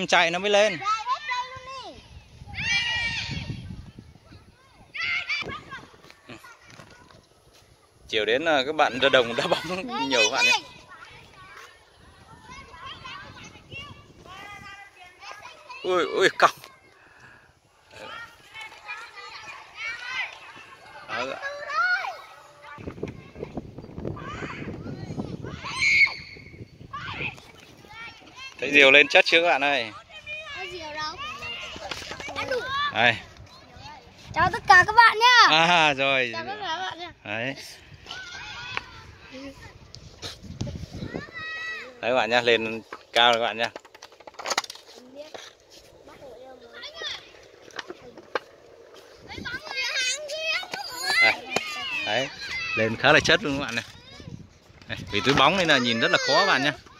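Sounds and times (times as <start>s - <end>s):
children calling and chattering: 0.0s - 56.9s.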